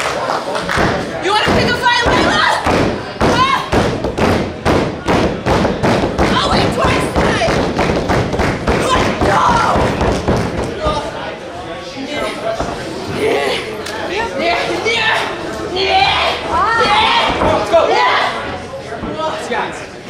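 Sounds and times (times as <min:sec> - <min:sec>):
woman shouting: 0:03.3 - 0:03.7.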